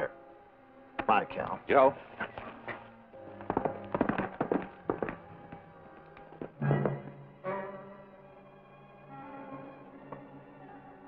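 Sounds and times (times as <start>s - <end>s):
horse galloping hoofbeats: 2.2s - 7.1s.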